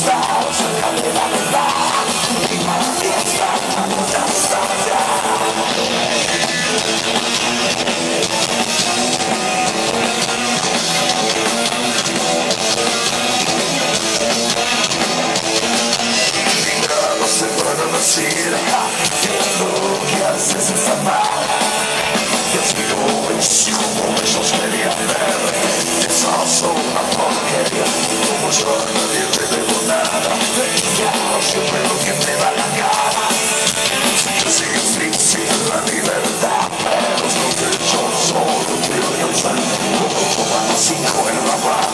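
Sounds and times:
drum kit: 0:00.0 - 0:41.9
electric guitars: 0:00.0 - 0:41.9
rock band playing live: 0:00.0 - 0:41.9.

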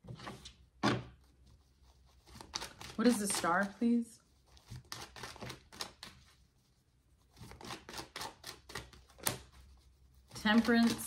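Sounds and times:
cards being shuffled: 0:04.6 - 0:06.2.

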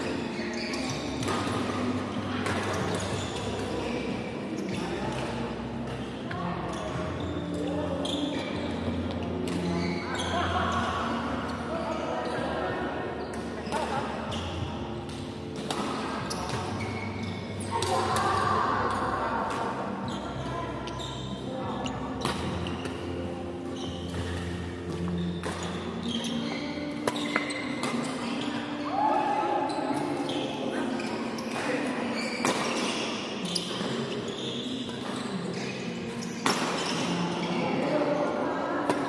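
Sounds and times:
rackets striking shuttlecocks: 0:01.1 - 0:03.7, 0:15.0 - 0:17.0, 0:24.1 - 0:28.3, 0:31.5 - 0:34.0, 0:36.3 - 0:37.2.

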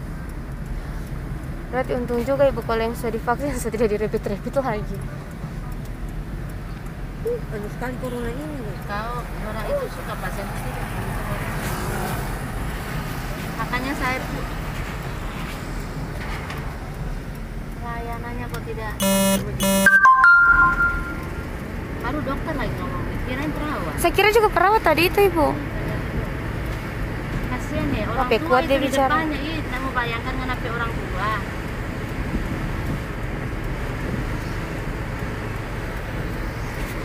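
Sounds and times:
car road and engine noise: 0:00.0 - 0:37.0
three-note chime: 0:19.0 - 0:21.4
short buzzy beeps: 0:19.0 - 0:21.5.

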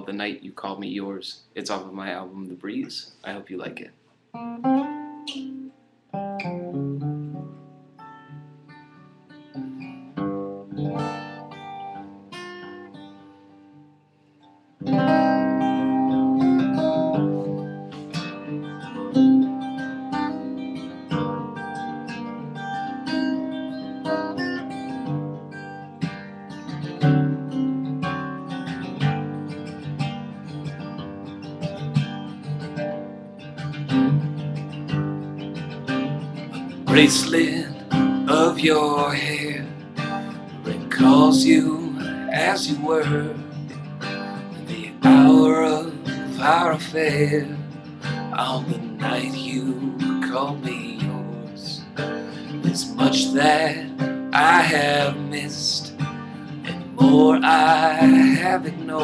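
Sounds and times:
solo acoustic guitar: 0:04.3 - 0:59.0.

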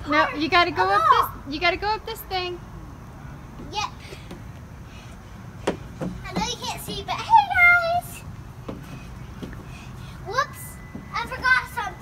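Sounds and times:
sharp knocks: 0:05.6 - 0:07.1.

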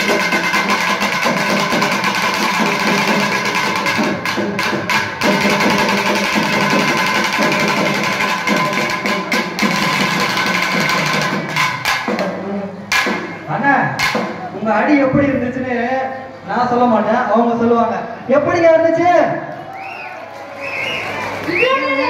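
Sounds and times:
barrel drums beating fast: 0:00.0 - 0:14.5.

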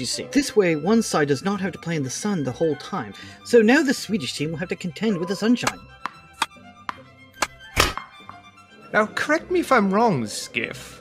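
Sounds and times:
soft background music: 0:00.0 - 0:11.0
sharp thunks: 0:05.7 - 0:08.4.

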